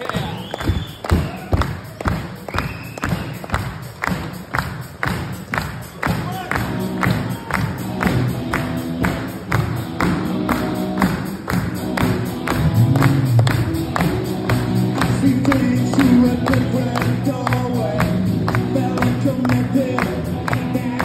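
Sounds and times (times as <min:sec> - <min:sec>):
audience clapping in time: 0:00.0 - 0:21.0
live band with drums and guitars: 0:00.0 - 0:21.0
sustained guitar notes: 0:06.6 - 0:21.0.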